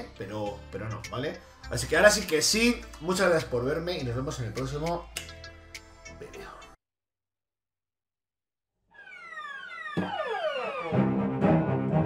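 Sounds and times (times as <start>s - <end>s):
electronic downward sweep: 8.9s - 12.0s.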